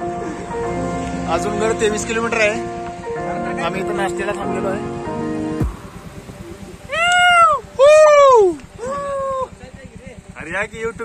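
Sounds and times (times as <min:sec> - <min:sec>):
men shouting: 0:06.4 - 0:09.6.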